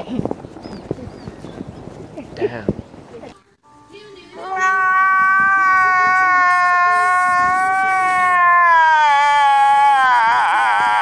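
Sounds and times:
man crying wail: 5.6 - 11.0.

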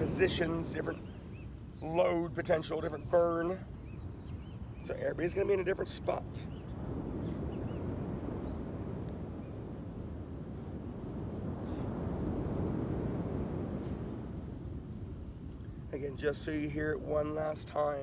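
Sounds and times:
wind blowing on microphone: 0.0 - 18.0.

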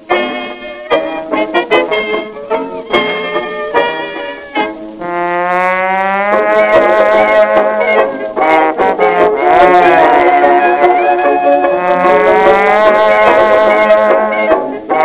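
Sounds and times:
jazz dance band with brass: 0.0 - 15.0
brass note sliding: 0.4 - 15.0.

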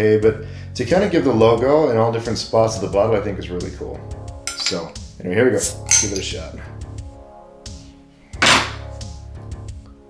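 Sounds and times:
background music: 0.0 - 10.0
glass bottle knock: 4.5 - 4.8, 5.9 - 6.2.

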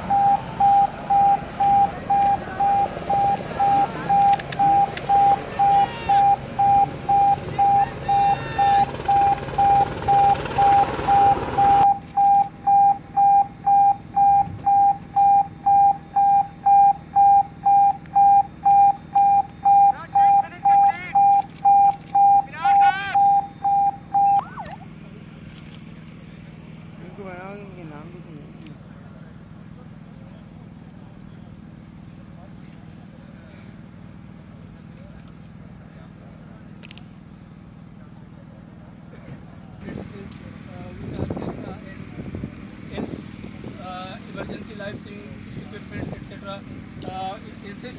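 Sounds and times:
electronic alarm beeping: 0.0 - 24.9
engine idling hum: 0.0 - 47.9
faint voices: 3.6 - 9.2
short rising chirps: 23.2 - 24.9.

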